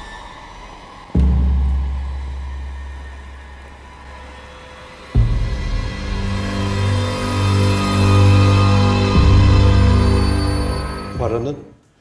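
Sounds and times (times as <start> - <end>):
steady deep tone: 0.0 - 11.7
tense thriller score music: 0.0 - 11.8
deep low hit: 5.2 - 7.7.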